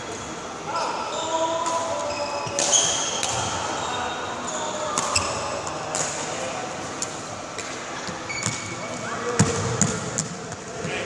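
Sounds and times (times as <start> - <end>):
shoes squeaking on court floor: 0.0 - 5.8, 8.0 - 10.9.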